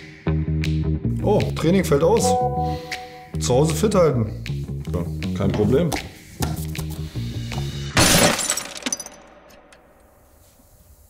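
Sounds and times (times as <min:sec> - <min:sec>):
background music: 0:00.0 - 0:08.0
glass shattering: 0:08.0 - 0:09.2.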